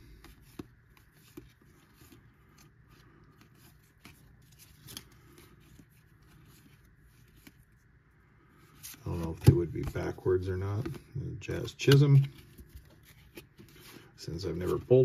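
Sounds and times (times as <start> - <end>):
cards ticking and rustling: 0.0 - 15.0.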